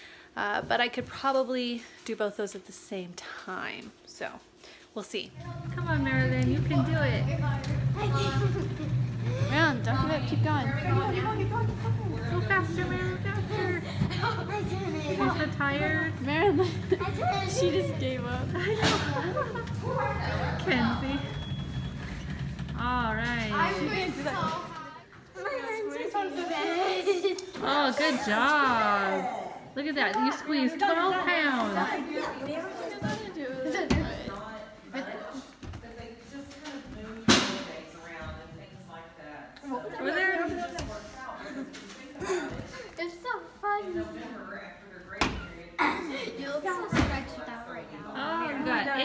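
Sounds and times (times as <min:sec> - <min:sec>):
steady low hum: 0:00.0 - 0:25.2
chatter in a busy room: 0:00.0 - 0:49.0.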